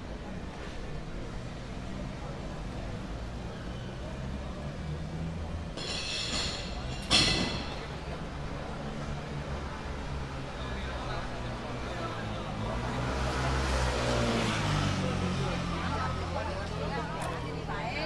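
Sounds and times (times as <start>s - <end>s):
traffic rumble: 0.0s - 18.0s
voices from cafe terraces: 0.0s - 18.0s.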